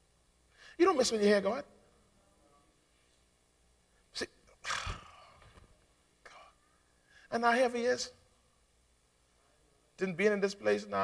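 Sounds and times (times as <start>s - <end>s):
man exhaling into microphone: 4.6s - 5.5s.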